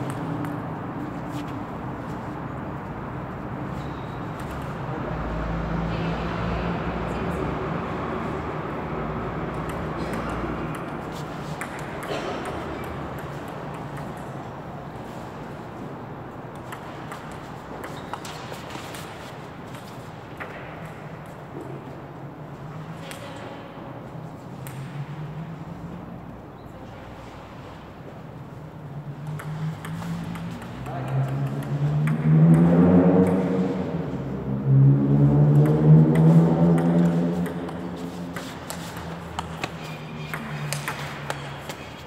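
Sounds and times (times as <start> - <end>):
table tennis ball clicking: 29.2 - 33.4.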